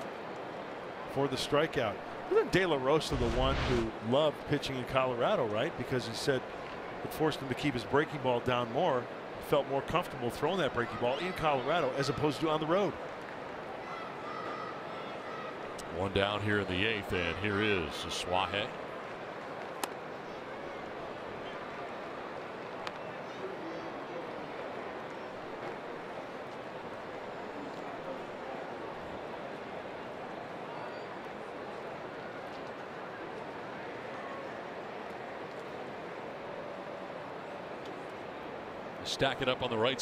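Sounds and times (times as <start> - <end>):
crowd murmur: 14.1 - 37.2
faint click: 22.8 - 23.1.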